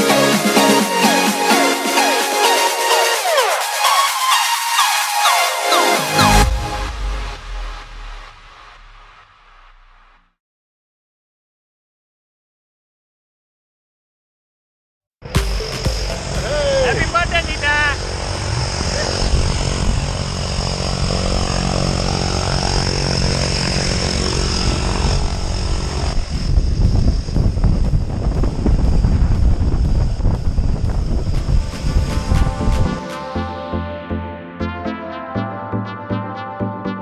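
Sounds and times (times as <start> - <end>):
turboprop engines running: 15.2 - 34.2
voices: 16.4 - 19.4.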